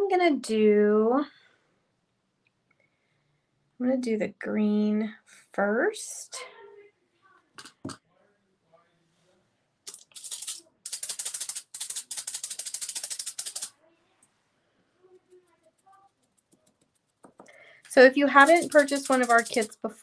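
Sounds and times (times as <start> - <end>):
fast rattle shaken by hand: 9.9 - 13.7, 18.3 - 19.8.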